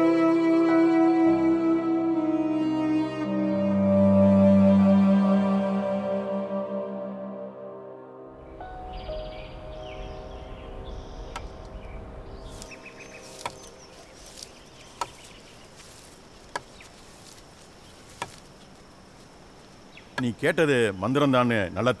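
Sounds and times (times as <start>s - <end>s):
soft music tones: 0.0s - 17.6s
low rumble: 8.4s - 14.3s
birds chirping: 8.4s - 22.0s
high insect drone: 8.4s - 22.0s.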